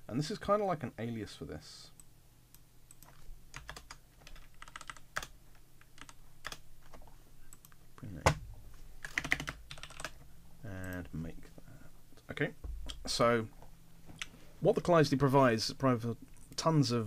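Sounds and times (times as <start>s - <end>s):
typing on computer keyboard: 2.9s - 6.6s, 9.0s - 10.2s.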